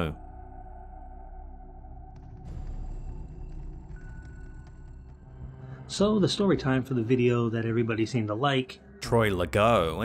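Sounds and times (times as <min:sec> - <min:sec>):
ambient music drone: 0:00.0 - 0:09.3.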